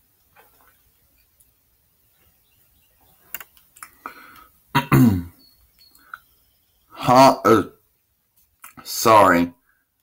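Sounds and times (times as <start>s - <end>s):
man clearing his throat: 4.7s - 5.4s.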